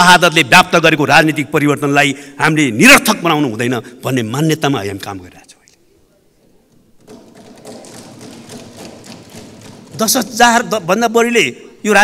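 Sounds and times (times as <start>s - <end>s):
people thumping wooden desks: 6.8s - 10.7s.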